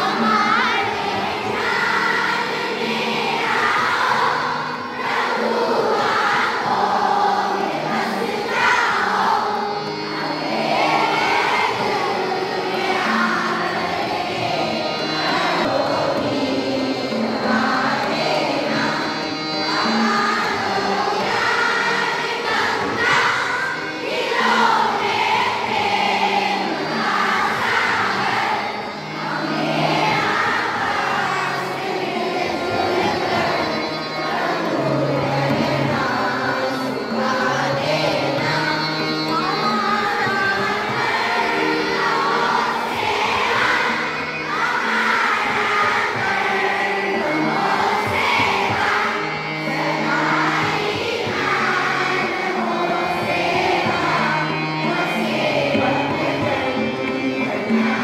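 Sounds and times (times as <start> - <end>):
children singing in unison: 0.0 - 58.0
harmonium: 0.0 - 58.0
tabla: 55.6 - 58.0.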